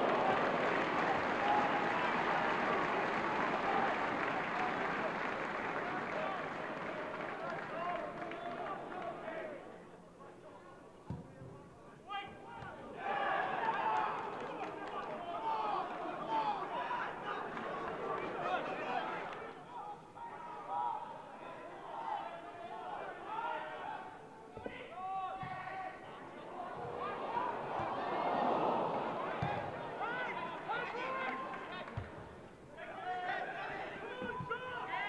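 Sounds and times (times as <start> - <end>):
players shouting: 0.0 - 9.7, 12.1 - 35.0
crowd noise: 0.0 - 35.0.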